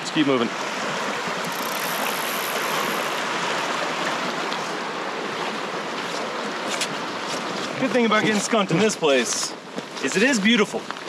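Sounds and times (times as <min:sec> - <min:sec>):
mountain creek rushing: 0:00.0 - 0:11.0.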